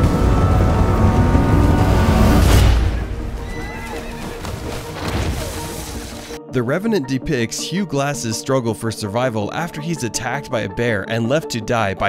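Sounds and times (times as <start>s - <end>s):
deep rumble: 0.0s - 3.6s
film score music: 0.0s - 12.0s
horse whinnying: 3.4s - 4.9s.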